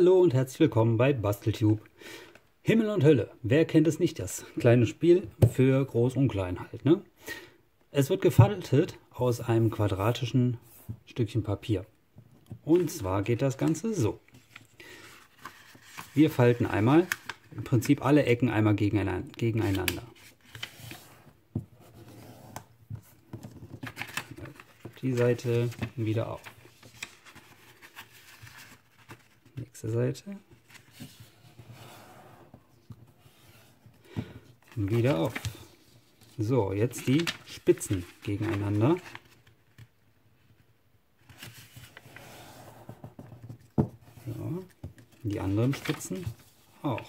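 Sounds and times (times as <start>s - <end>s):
paper rustling and creasing: 12.7s - 18.1s, 19.6s - 29.8s, 30.4s - 34.0s, 34.6s - 39.9s, 41.2s - 47.0s.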